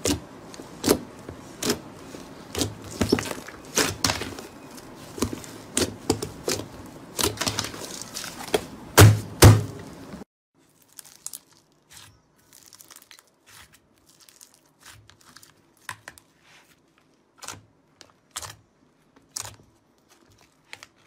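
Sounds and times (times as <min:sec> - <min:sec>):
slime crackling and popping: 0:10.6 - 0:16.2.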